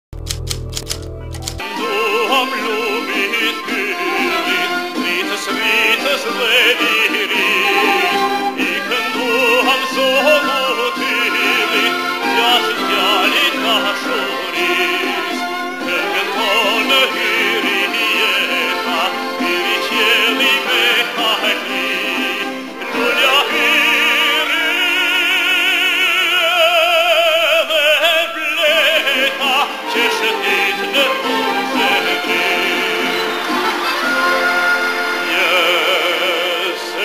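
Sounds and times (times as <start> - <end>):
rapid sharp clicks: 0.2 - 1.6
orchestral music with singer: 1.0 - 37.0.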